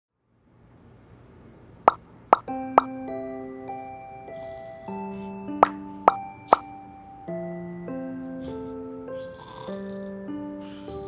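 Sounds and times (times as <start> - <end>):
soft background music: 2.4 - 11.0.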